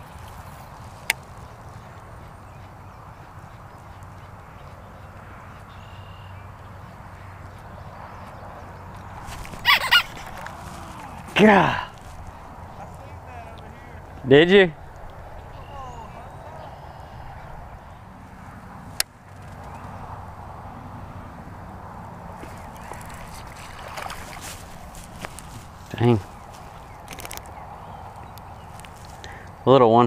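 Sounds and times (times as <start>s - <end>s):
fish splashing in water: 22.3s - 25.2s.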